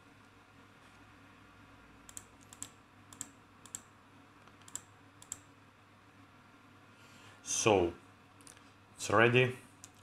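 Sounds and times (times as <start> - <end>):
computer mouse clicks: 2.0 - 5.5, 9.8 - 10.0.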